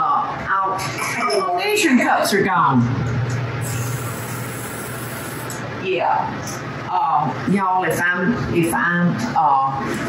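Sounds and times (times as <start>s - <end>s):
steady low hum: 1.8s - 10.0s.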